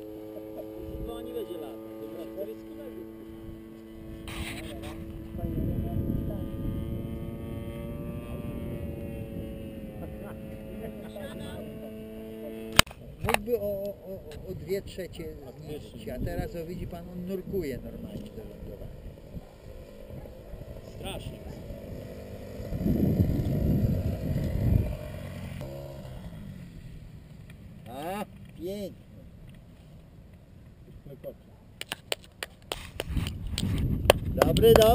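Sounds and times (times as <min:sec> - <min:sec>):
model plane engine idling: 0:00.0 - 0:12.9, 0:15.8 - 0:28.5
wind rumbling on microphone: 0:00.0 - 0:27.3, 0:32.7 - 0:34.9
person clapping hands: 0:31.8 - 0:34.9.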